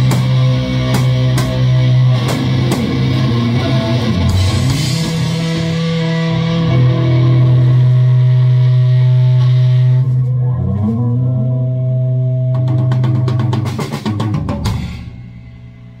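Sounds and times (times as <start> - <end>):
distorted electric guitar chord: 0.0 - 10.5
rapid drum fill: 12.6 - 15.9.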